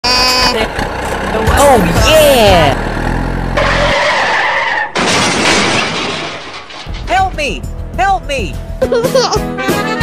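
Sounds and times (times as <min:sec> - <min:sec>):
skidding with high tone: 0:00.8 - 0:07.1
toy truck crashing over: 0:04.2 - 0:07.1.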